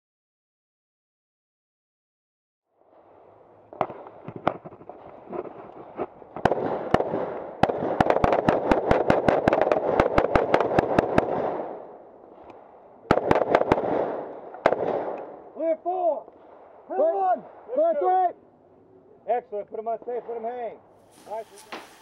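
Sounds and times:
carbine gunfire: 3.7s - 15.4s.

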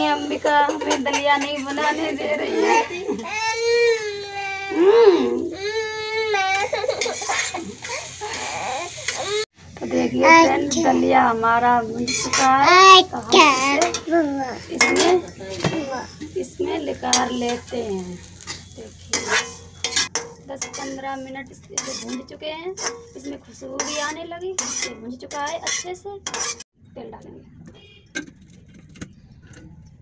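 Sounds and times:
metal spatula scraping pan: 0.0s - 4.4s, 6.3s - 26.7s
toddler crying: 2.5s - 7.1s, 7.9s - 9.5s.

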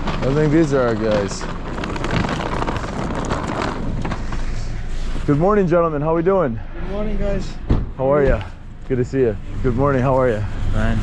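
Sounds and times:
outdoor street noise: 0.0s - 11.0s.

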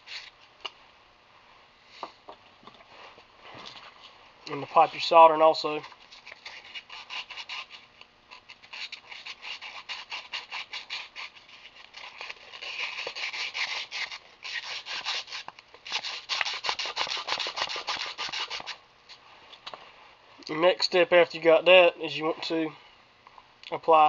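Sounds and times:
sandpaper rubbing on metal: 4.7s - 7.9s, 8.6s - 18.8s.

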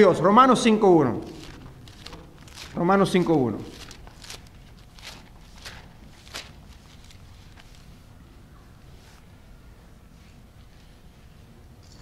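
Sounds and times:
book pages turning: 1.2s - 8.1s.

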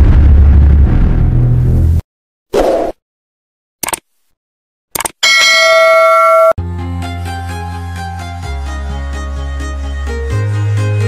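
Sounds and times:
loud bell chime: 5.2s - 6.6s
music with strings and bass: 6.6s - 11.0s.

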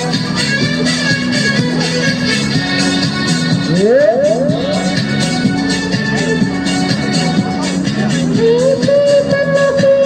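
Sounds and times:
music from a speaker: 0.0s - 10.0s.

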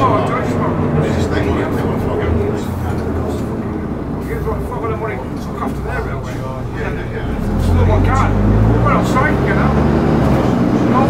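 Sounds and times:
bus diesel engine running: 0.0s - 11.0s
passengers talking: 0.0s - 11.0s.

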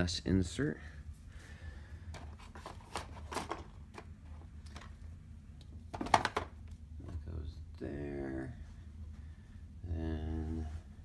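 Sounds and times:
boards knocking in plastic box: 5.9s - 6.5s.

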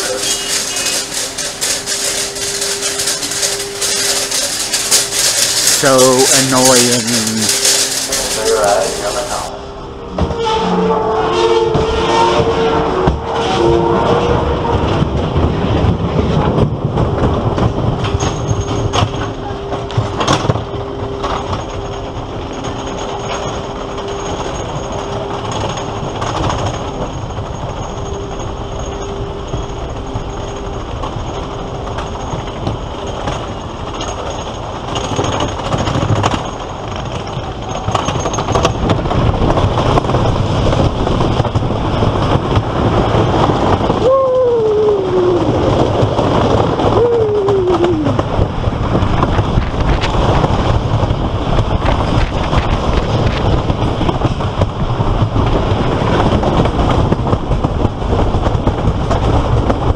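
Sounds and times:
wheels rumbling on wooden track: 0.0s - 10.4s, 11.7s - 59.9s
roller coaster lift clatter and hum: 0.0s - 59.9s.

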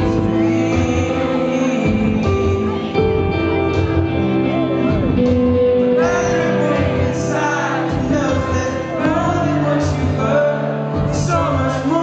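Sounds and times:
guitar: 0.0s - 12.0s
sustained keyboard chords: 0.0s - 12.0s.

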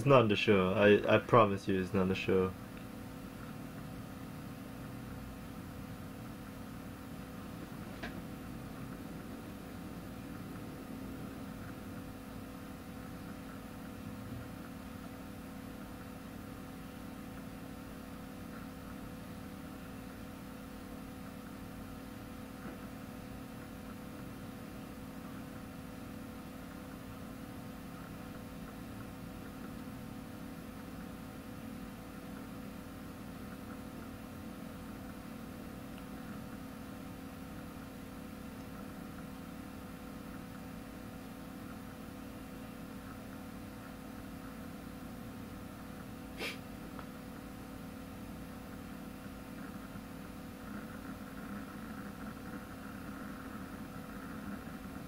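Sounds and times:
machine hum with hiss: 0.0s - 55.0s.

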